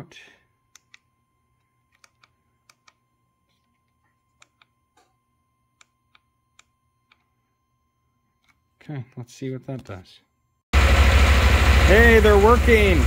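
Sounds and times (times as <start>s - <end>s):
switch buttons clicking: 1.9s - 3.0s.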